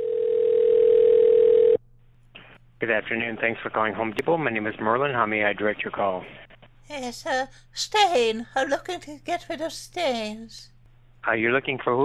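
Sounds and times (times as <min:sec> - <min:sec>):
telephone ringback tone: 0:00.0 - 0:01.8.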